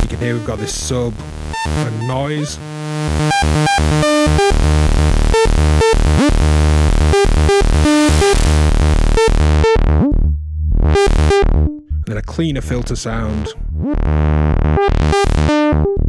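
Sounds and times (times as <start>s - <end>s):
sub bass: 0.0s - 16.0s
synth stepped notes: 0.0s - 16.0s
synth noise hiss: 7.8s - 8.7s.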